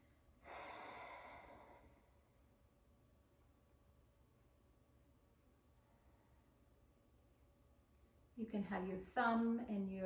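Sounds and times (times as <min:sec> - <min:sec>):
woman breathing: 0:00.0 - 0:02.6, 0:05.7 - 0:06.7.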